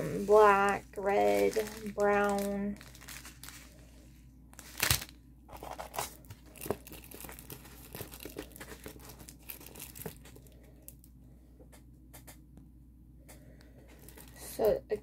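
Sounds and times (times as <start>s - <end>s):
plastic packaging crinkling: 0.0s - 3.9s, 4.6s - 11.0s, 13.9s - 14.7s.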